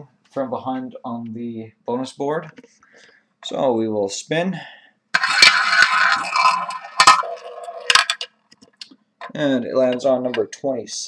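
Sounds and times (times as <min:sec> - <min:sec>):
roulette ball rattling in wheel: 0:05.2 - 0:08.4.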